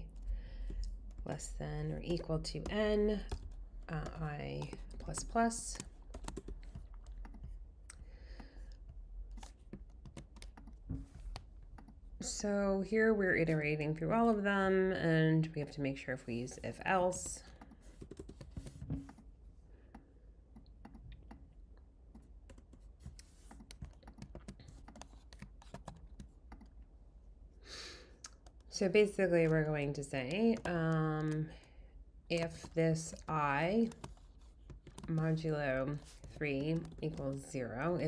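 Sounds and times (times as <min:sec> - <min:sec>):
typing on computer keyboard: 0:02.0 - 0:07.5, 0:09.4 - 0:12.0, 0:17.3 - 0:19.2, 0:23.5 - 0:26.7, 0:30.2 - 0:31.7, 0:32.4 - 0:38.0.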